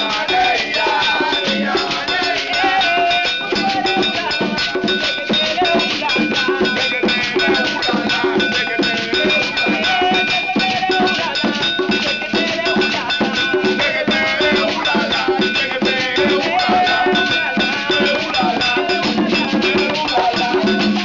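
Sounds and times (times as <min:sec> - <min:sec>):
metal bell struck: 0:00.0 - 0:21.0
people singing: 0:00.0 - 0:21.0
shekere shaking: 0:00.0 - 0:21.0.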